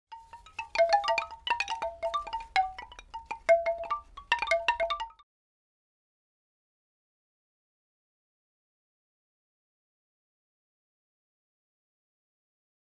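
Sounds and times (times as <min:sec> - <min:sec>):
chimes ringing: 0:00.1 - 0:05.2.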